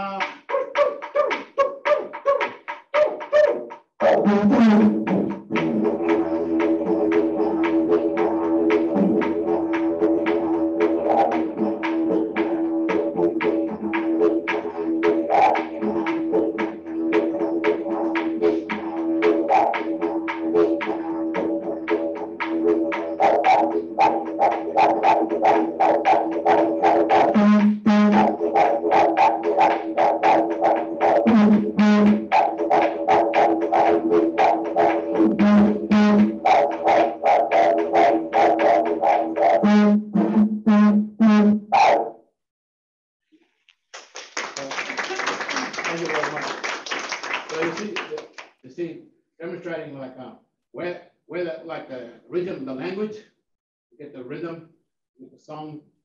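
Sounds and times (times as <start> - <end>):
didgeridoo drone: 3.0 - 42.0.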